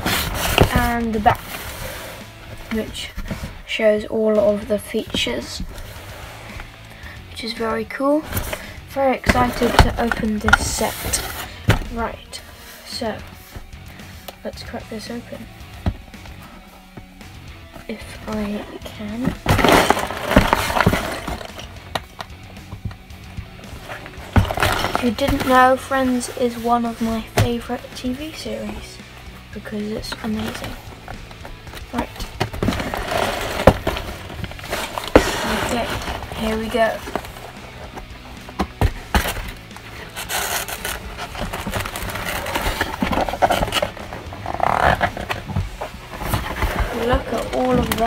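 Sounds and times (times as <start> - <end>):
box handling: 0.0 - 3.7, 8.3 - 12.5, 17.7 - 48.0
cardboard rustling and tearing: 0.0 - 6.7, 8.2 - 12.2, 17.8 - 22.8, 23.6 - 28.9, 29.6 - 48.0.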